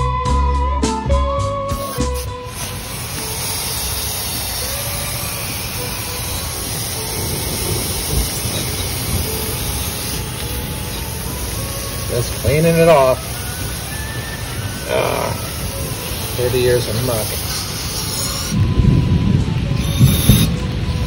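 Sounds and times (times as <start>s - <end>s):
guitar music: 0.0s - 19.8s
aerosol can spraying: 1.7s - 18.6s.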